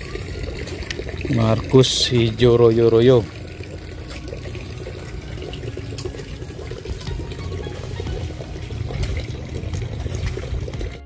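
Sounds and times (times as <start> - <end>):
water rushing along ditch: 0.0 - 11.0.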